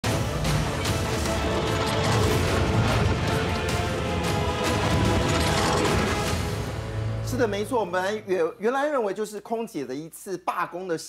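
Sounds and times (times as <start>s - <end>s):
tv theme music: 0.0s - 8.6s
sharp hits: 0.6s - 7.4s.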